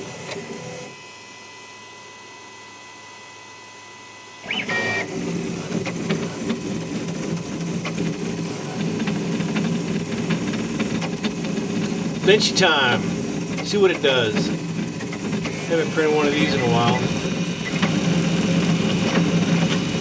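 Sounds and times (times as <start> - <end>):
stepper motors whining: 0.0 - 20.0
print head ticks: 8.8 - 18.0.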